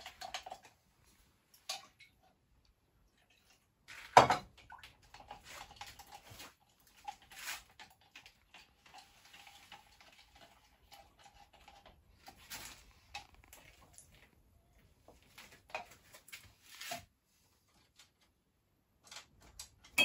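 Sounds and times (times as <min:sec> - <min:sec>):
stick stirring paint in jar: 0:05.0 - 0:13.9.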